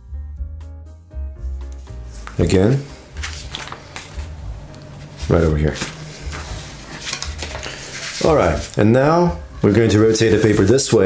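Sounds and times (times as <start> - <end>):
paper rustling and crackling: 2.1 - 8.8, 10.2 - 11.0.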